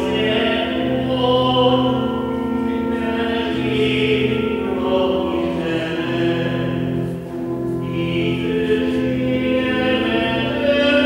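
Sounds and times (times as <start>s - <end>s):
people singing a hymn: 0.0s - 6.9s, 7.8s - 11.0s
sustained accompanying chords: 0.0s - 11.0s.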